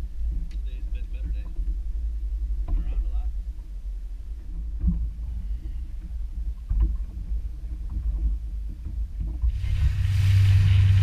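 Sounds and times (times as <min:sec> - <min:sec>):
low rumble of boat rocking: 0:00.0 - 0:11.0
water lapping at hull: 0:00.0 - 0:11.0.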